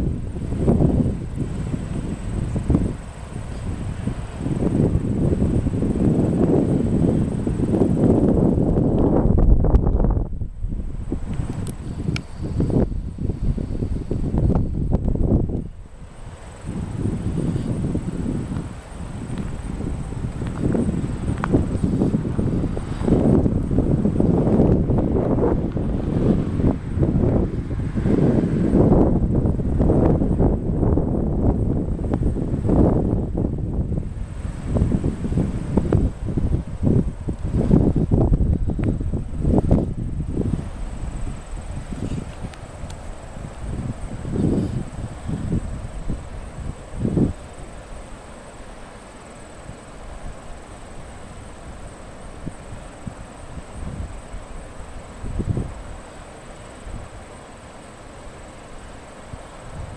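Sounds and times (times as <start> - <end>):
wind buffeting microphone: 0.0 - 57.7, 58.4 - 59.9.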